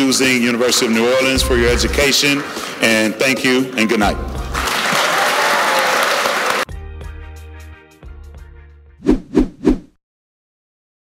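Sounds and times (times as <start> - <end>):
music with steady beat: 1.2 - 2.2, 4.0 - 4.7, 6.7 - 8.8
audience applauding: 4.4 - 6.7.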